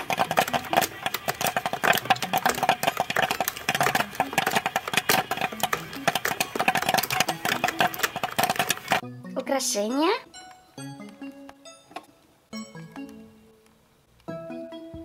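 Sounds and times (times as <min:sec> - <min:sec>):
toy popcorn maker clicks and crackles: 0:00.0 - 0:09.0.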